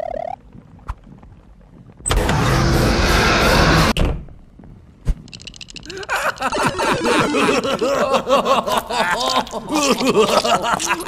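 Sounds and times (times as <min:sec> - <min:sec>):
loud rushing noise: 0:02.1 - 0:04.0.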